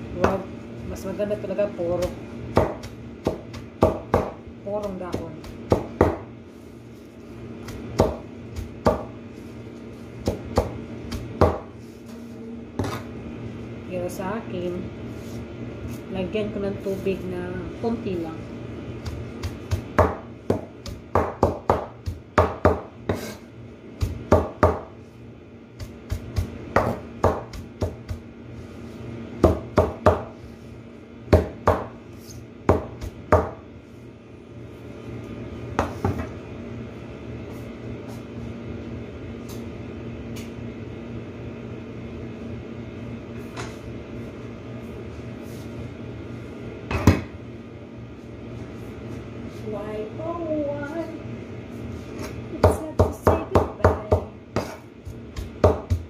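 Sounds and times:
knife chopping leaves on board: 2.0s - 6.3s, 7.6s - 9.2s, 10.2s - 12.2s, 19.0s - 25.0s, 25.8s - 28.2s, 29.4s - 30.4s, 31.3s - 33.6s, 52.2s - 56.0s.

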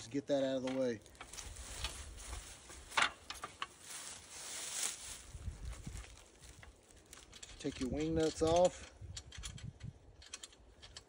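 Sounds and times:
rustling: 1.0s - 8.4s.

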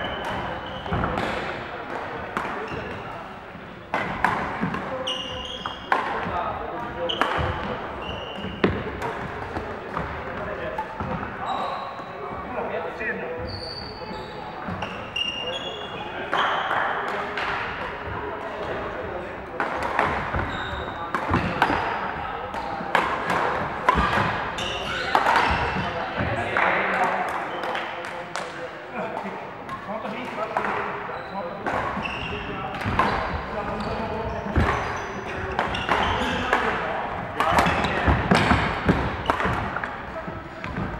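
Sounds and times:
shoes squeaking on floor: 0.0s - 1.4s, 2.6s - 4.0s, 4.9s - 6.0s, 6.9s - 8.8s, 10.8s - 12.4s, 13.3s - 16.8s, 20.2s - 22.8s, 23.9s - 26.4s, 31.1s - 40.9s
players' voices: 0.0s - 40.9s
racket hitting shuttlecock: 3.9s - 4.9s, 19.6s - 20.5s, 21.1s - 25.9s, 34.4s - 40.9s.

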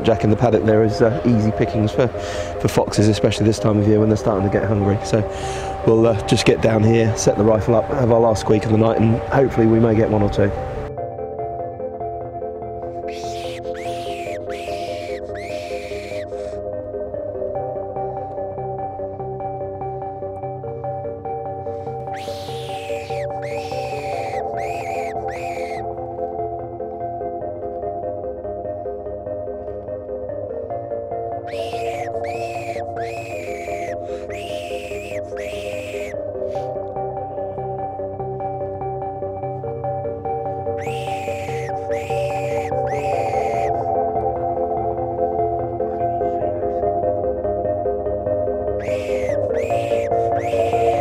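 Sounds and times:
fox call squeals: 13.1s - 16.6s, 22.1s - 26.0s, 31.5s - 36.7s, 40.8s - 43.9s, 48.8s - 51.0s.

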